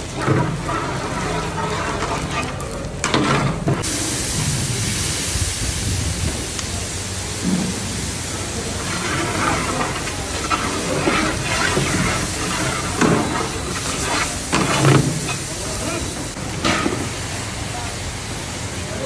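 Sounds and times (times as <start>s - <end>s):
hot oil hissing in pan: 0.0s - 19.0s.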